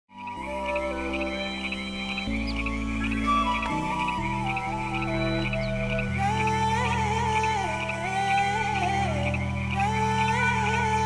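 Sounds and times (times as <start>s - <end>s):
sustained music chords: 0.2s - 11.0s.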